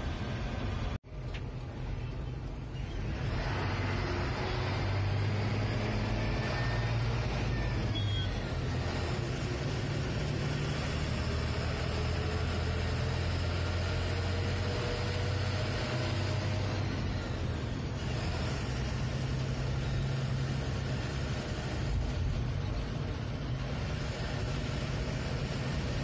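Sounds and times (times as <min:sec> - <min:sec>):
diesel truck engine droning: 0:00.0 - 0:26.0
road noise: 0:00.0 - 0:26.0.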